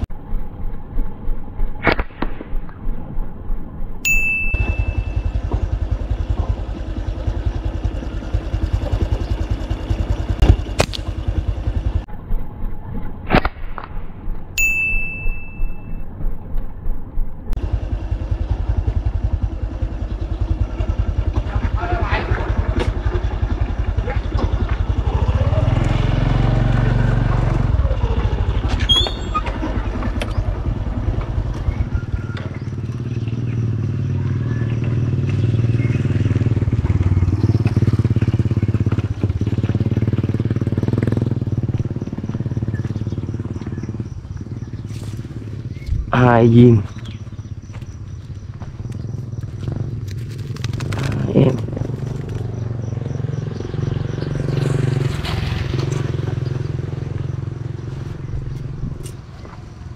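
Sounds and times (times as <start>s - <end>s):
small motorcycle engine running: 4.1s - 13.1s, 17.6s - 59.9s.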